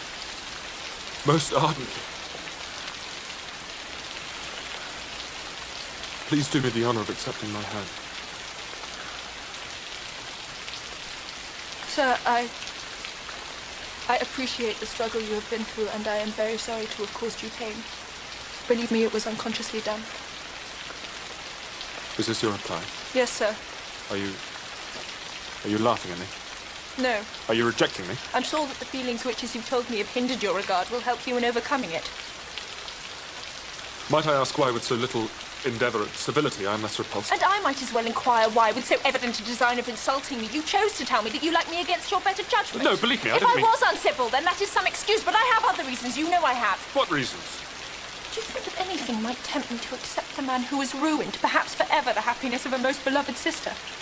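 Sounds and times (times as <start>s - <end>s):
heavy rain falling: 0.0s - 54.0s.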